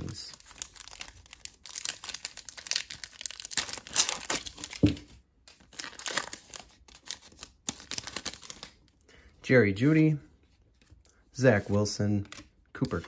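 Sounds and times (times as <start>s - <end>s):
foil wrapper tearing and crinkling: 0.0s - 4.9s, 5.5s - 8.8s.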